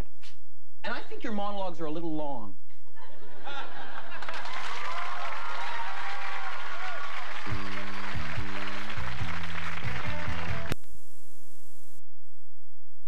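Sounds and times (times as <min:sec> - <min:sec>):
audience laughing and applauding: 0:03.3 - 0:10.7
faint steady hum: 0:10.4 - 0:13.0.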